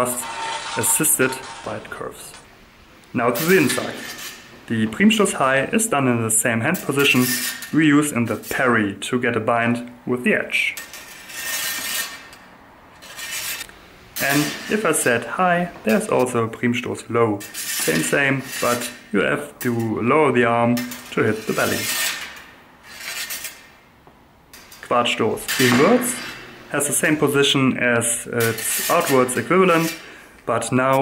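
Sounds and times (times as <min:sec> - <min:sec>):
steel blades scraping: 0:00.0 - 0:02.5, 0:03.3 - 0:04.5, 0:06.8 - 0:08.8, 0:10.5 - 0:15.3, 0:17.4 - 0:20.0, 0:20.6 - 0:23.9, 0:24.6 - 0:27.3, 0:28.1 - 0:30.2.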